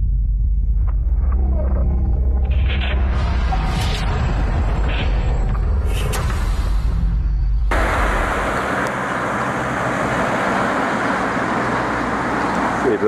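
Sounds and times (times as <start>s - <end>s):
deep rumble: 0.0s - 12.9s
traffic on wet road: 7.7s - 13.0s.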